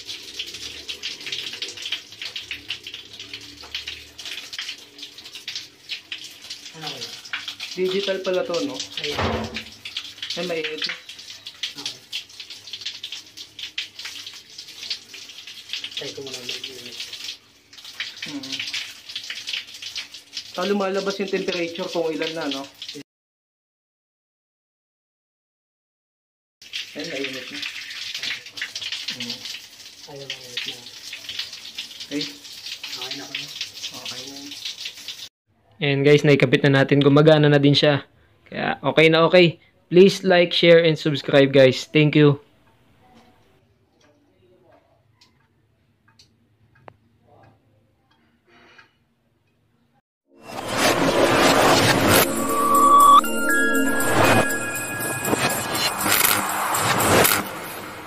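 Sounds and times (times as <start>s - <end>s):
shower water running: 0.0s - 23.0s, 26.6s - 35.3s, 50.4s - 58.0s
whoosh sound effects: 50.4s - 58.0s.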